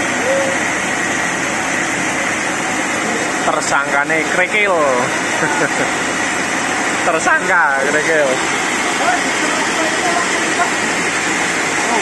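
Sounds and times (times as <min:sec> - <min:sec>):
high constant whine: 0:00.0 - 0:12.0
sawmill machinery running: 0:00.0 - 0:12.0.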